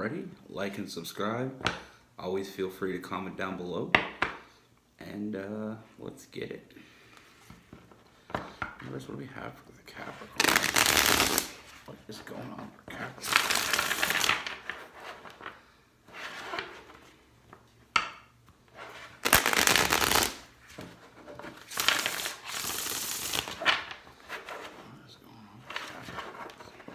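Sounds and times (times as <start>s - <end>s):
cards being shuffled: 10.2s - 11.8s, 13.2s - 15.6s, 19.0s - 24.7s.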